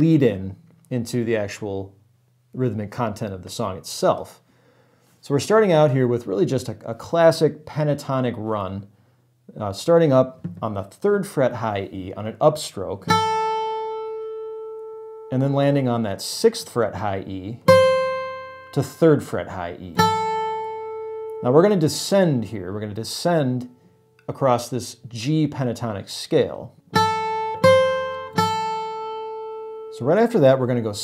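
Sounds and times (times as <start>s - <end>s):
acoustic guitar picked notes: 13.0s - 24.4s, 26.8s - 30.5s
acoustic guitar note ringing: 17.6s - 19.2s, 26.9s - 30.0s.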